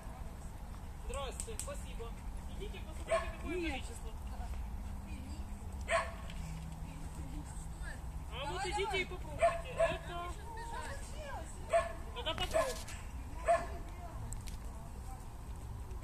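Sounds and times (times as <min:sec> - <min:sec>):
small dog barking and yipping: 0:03.0 - 0:03.4, 0:05.8 - 0:06.3, 0:09.4 - 0:10.1, 0:11.7 - 0:13.8.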